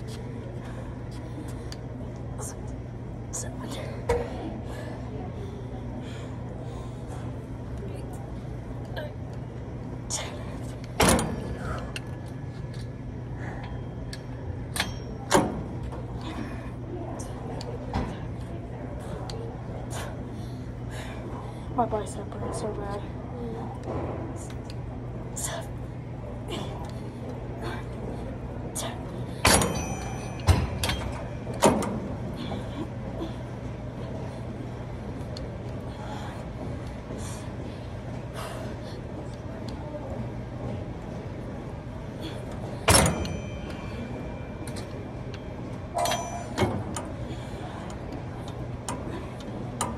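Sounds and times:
steady low hum: 0.0 - 49.9
gym cable machine clanking: 29.4 - 32.8, 42.4 - 49.9
weight stack clanking: 42.6 - 47.7.

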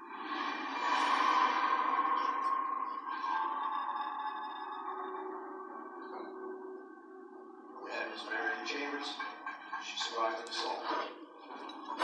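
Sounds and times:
eerie electronic tones from television: 0.0 - 12.0.

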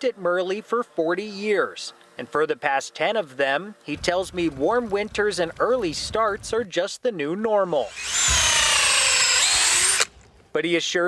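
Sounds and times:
cordless drill motor whine: 7.7 - 10.4.

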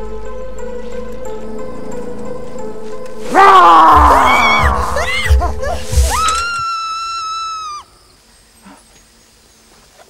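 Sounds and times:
person screaming high-pitched: 3.3 - 5.5.

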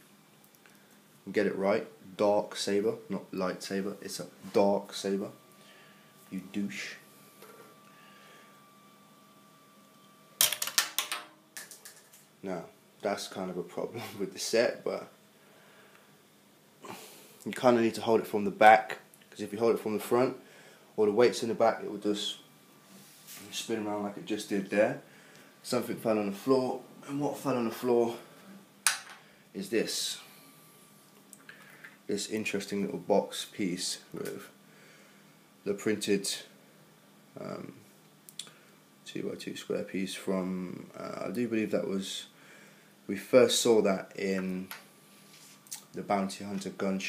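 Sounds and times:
plastic parts clattering on floor: 10.4 - 12.3.

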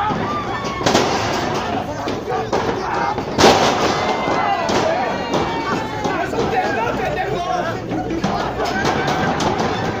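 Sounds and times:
spectators shouting: 0.0 - 10.0.

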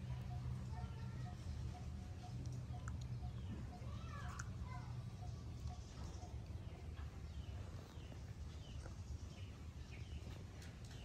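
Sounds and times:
steady low hum: 0.0 - 3.9.

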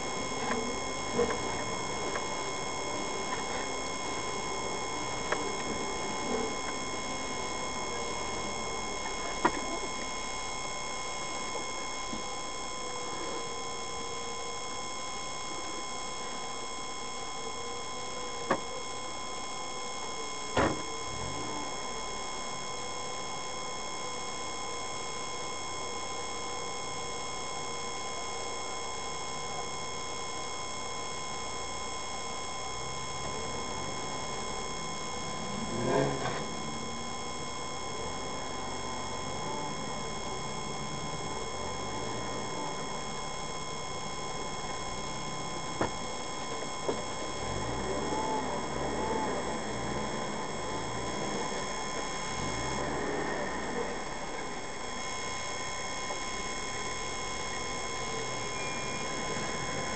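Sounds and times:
electronic whine: 0.0 - 59.9.

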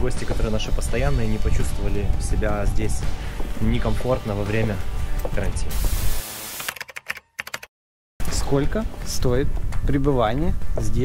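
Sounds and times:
glitch noise burst: 5.7 - 6.9
sharp typing clicks: 6.5 - 7.7.

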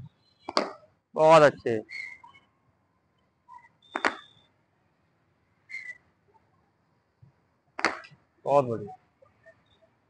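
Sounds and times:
cricket ball hitting bat: 0.4 - 0.8, 3.9 - 4.3, 7.8 - 8.1.

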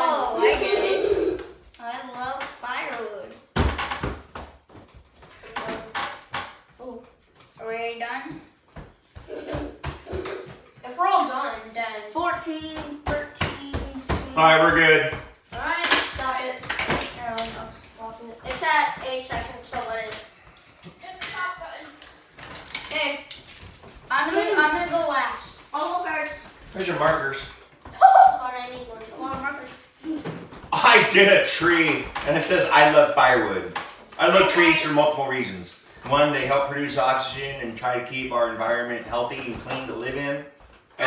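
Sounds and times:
children talking and chattering: 0.0 - 2.3, 9.2 - 11.2, 24.1 - 26.4.

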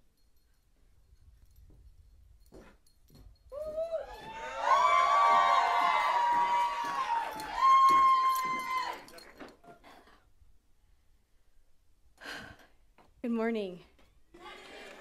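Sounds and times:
audience whooping and cheering: 3.6 - 9.1.

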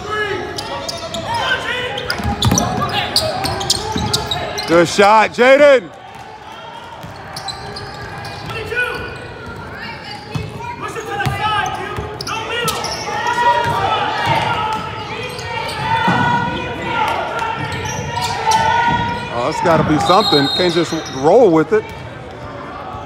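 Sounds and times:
murmur of voices in gym: 0.0 - 23.0.

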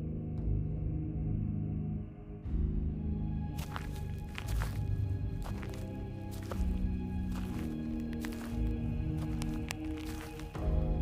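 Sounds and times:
background music of low notes: 0.0 - 11.0
footsteps in dry leaves: 3.6 - 11.0.

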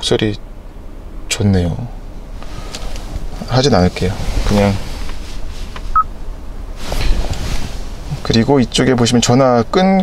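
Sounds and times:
low cabin hum: 0.0 - 10.0.

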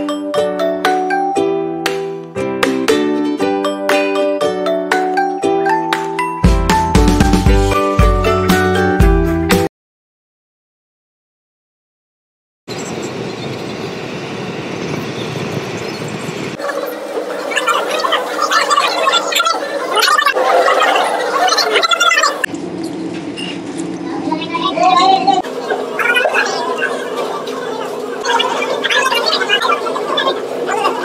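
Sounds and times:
car road noise rumble: 12.7 - 16.6.

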